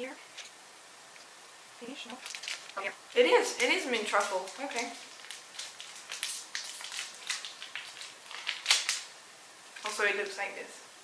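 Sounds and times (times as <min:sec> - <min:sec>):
wrapper crinkling and tearing: 0:02.0 - 0:10.0.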